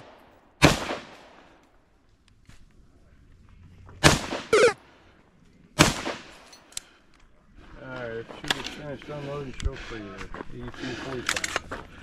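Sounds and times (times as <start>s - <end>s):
loud gunshots: 0.0s - 1.2s, 4.0s - 4.8s, 5.8s - 6.4s.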